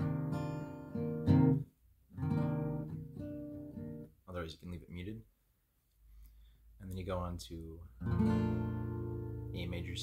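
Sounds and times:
acoustic guitar strumming: 0:00.0 - 0:04.1, 0:08.0 - 0:10.0.

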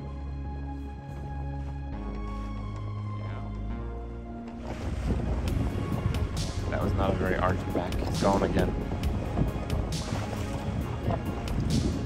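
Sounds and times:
soft background music: 0:00.0 - 0:12.0
gusty wind buffeting microphone: 0:04.6 - 0:12.0.

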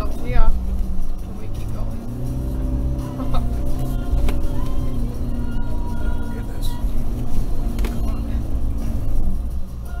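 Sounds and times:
diesel engine low rumble: 0:00.0 - 0:10.0.

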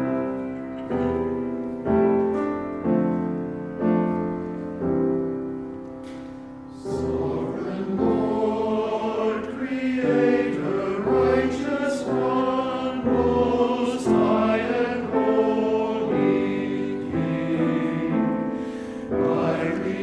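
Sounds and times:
church choir singing: 0:00.0 - 0:20.0
piano: 0:00.0 - 0:20.0.

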